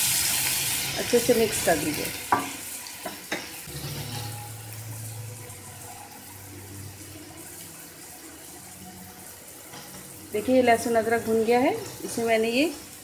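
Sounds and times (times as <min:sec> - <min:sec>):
paste sizzling in hot oil: 0:00.0 - 0:13.0.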